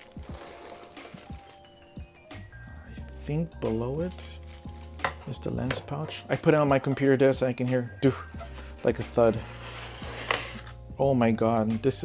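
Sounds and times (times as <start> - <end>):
plastic bag crinkling: 0.0 - 1.9, 4.0 - 5.3
soft background music: 0.0 - 12.0.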